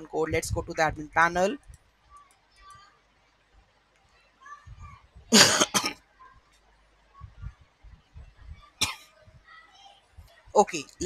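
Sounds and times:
man coughing: 0:05.3 - 0:05.9.

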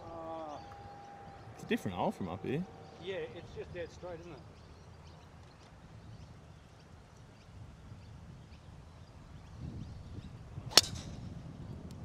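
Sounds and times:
wind noise on microphone: 0:05.8 - 0:12.0
golf club striking ball: 0:10.7 - 0:11.3.

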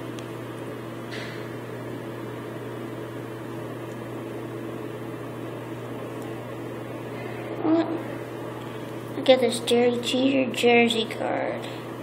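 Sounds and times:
electrical hum of appliance: 0:00.0 - 0:12.0.

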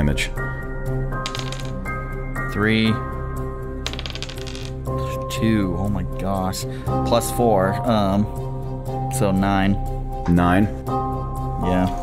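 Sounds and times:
background music: 0:00.0 - 0:12.0
dice rattling on a table: 0:01.2 - 0:01.8, 0:03.8 - 0:04.8.

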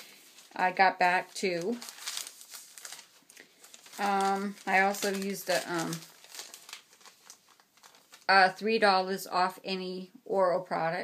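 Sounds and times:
paper receipt crinkling: 0:00.0 - 0:08.6.

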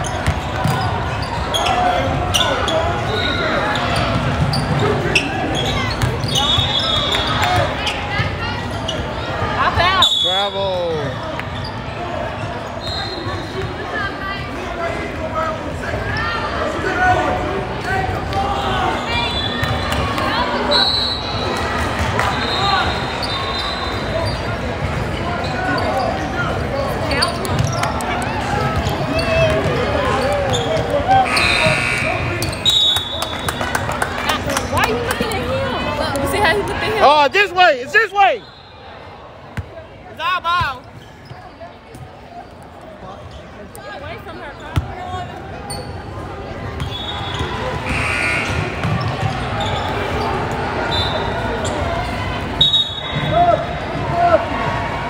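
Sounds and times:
sneakers squeaking on court: 0:00.0 - 0:09.9, 0:19.3 - 0:20.6, 0:22.4 - 0:33.9, 0:39.6 - 0:52.2
spectators' voices: 0:00.0 - 0:55.0
basketball bouncing: 0:48.6 - 0:49.4.

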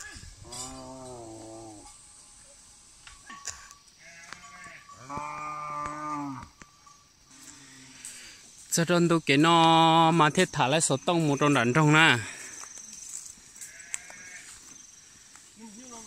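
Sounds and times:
cattle mooing: 0:04.0 - 0:06.5.

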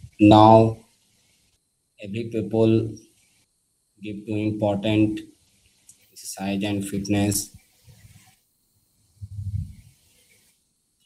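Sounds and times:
man humming with closed mouth: 0:09.2 - 0:09.8.

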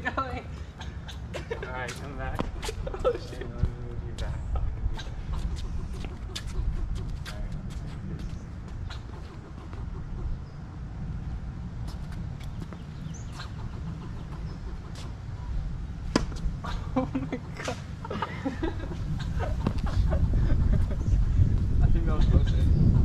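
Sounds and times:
low outdoor rumble: 0:00.0 - 0:23.0.

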